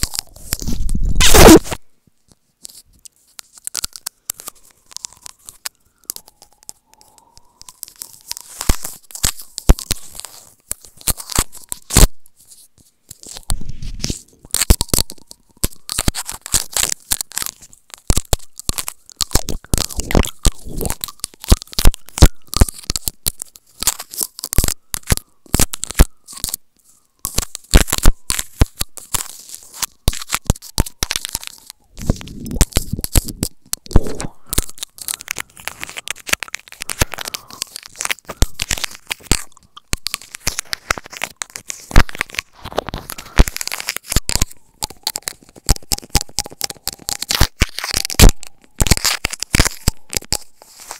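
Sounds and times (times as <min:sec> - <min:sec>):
teeth biting plastic pick: 0:03.4 - 0:12.2, 0:13.1 - 0:50.9.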